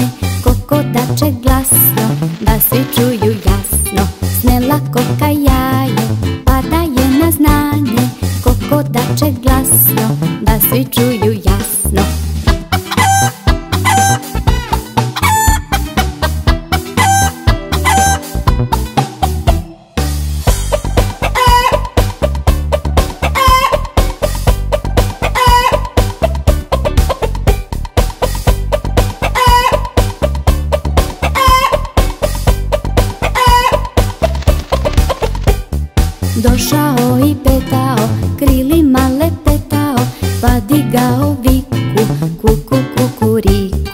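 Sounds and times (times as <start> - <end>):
upbeat children's music: 0.0 - 43.9
hen clucking: 12.5 - 19.6, 20.7 - 27.4, 28.2 - 35.5
chicken call: 12.7 - 18.3, 21.2 - 22.0, 23.2 - 23.9, 25.2 - 26.4, 29.2 - 30.3, 31.2 - 32.0, 33.2 - 34.0.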